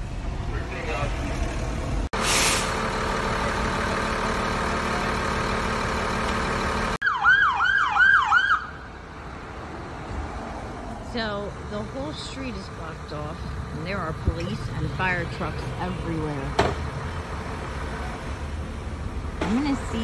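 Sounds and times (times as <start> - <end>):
engine and traffic drone: 0.0 - 20.0
emergency vehicle siren yelp: 2.2 - 9.0.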